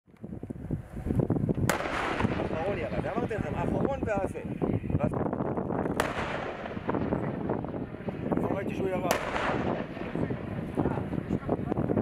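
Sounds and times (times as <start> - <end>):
howitzer firing blast: 1.6 - 3.8, 5.8 - 11.6.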